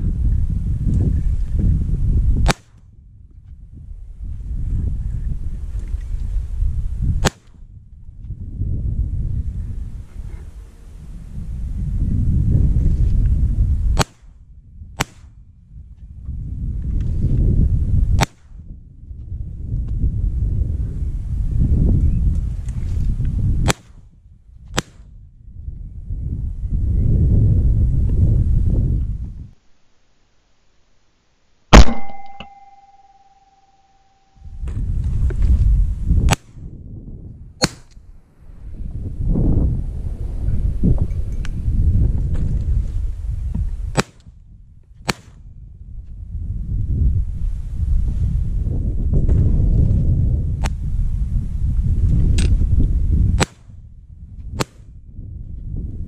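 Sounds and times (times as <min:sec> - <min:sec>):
wind rumble on microphone: 0:00.0 - 0:29.6, 0:34.3 - 0:56.0
shotgun shot: 0:02.4 - 0:02.8, 0:07.2 - 0:07.6, 0:14.0 - 0:14.3, 0:18.2 - 0:18.6, 0:31.8 - 0:32.8, 0:37.6 - 0:37.9, 0:45.1 - 0:45.4
sharp cracks: 0:02.4 - 0:02.9, 0:07.2 - 0:07.6, 0:14.0 - 0:14.4, 0:15.0 - 0:15.4, 0:18.2 - 0:18.6, 0:23.6 - 0:24.1, 0:24.8 - 0:25.1, 0:31.7 - 0:33.2, 0:37.6 - 0:38.0, 0:43.9 - 0:44.3, 0:45.0 - 0:45.4
shotgun shots: 0:31.7 - 0:32.8
ringing tone: 0:31.8 - 0:34.5.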